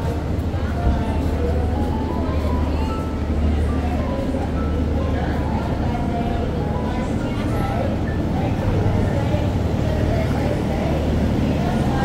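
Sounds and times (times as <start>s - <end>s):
music: 0.0s - 9.4s
voices: 0.0s - 12.0s.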